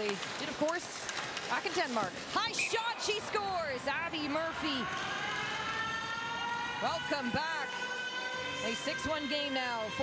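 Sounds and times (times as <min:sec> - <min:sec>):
goal horn blast: 0:06.9 - 0:10.0.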